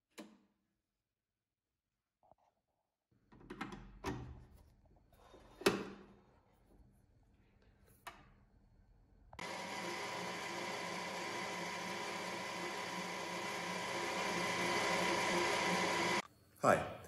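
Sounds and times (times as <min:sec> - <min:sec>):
lathe tool cutting hiss: 0:09.4 - 0:16.2
metal lathe whining: 0:09.4 - 0:16.2.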